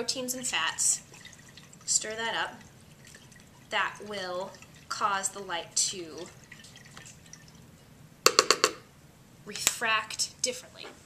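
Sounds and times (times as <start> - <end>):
stirred water: 0.0 - 7.9
hard object tapping: 8.2 - 8.9.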